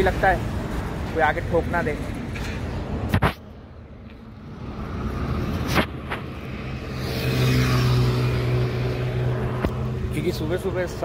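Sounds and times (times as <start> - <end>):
vehicle passing by: 4.4 - 11.0.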